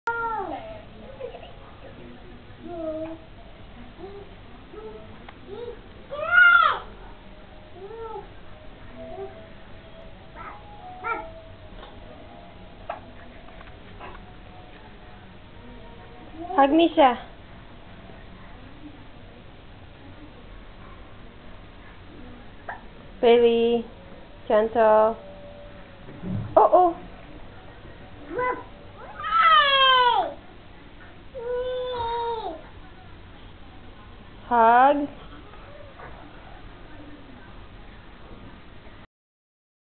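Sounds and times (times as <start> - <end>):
child wailing: 5.5 - 6.9, 28.4 - 30.4, 31.4 - 32.6
baby crying: 28.4 - 30.4, 31.4 - 32.6.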